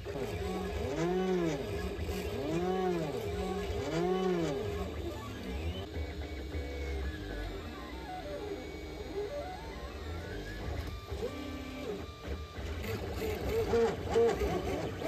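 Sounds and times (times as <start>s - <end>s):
stepper motors whining: 0.0s - 15.0s.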